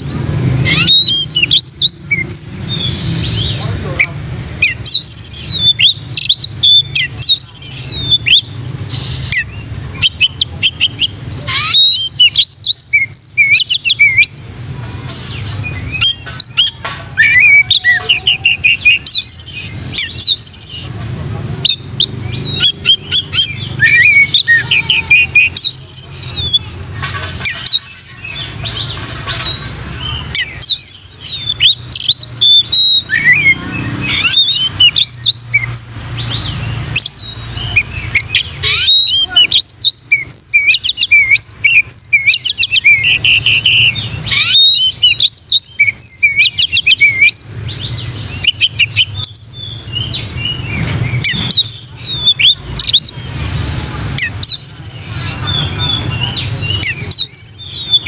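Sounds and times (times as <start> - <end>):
songbird whistles chirps and trills: 0.0 - 58.0.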